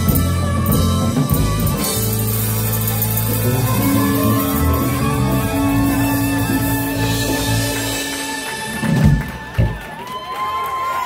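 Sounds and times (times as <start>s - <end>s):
live band chord: 0.0s - 9.6s
audience clapping: 2.4s - 11.0s.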